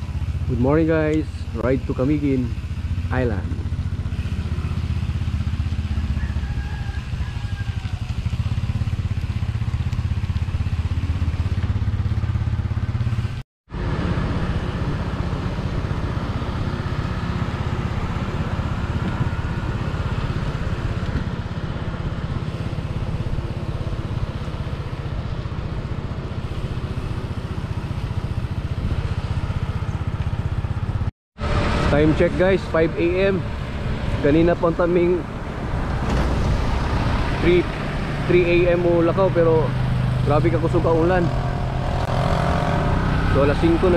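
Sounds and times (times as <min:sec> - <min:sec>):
motorcycle engine running: 0:00.0 - 0:43.9
road and wind noise: 0:00.0 - 0:43.9.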